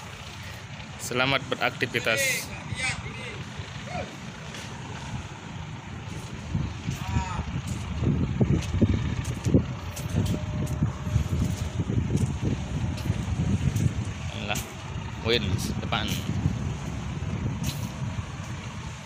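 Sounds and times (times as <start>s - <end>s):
low rumble of ship: 0.0s - 19.0s
wind buffeting microphone: 0.0s - 19.0s.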